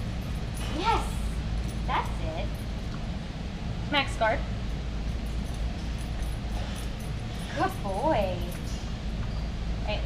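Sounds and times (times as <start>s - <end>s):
low store room hum: 0.0s - 10.0s.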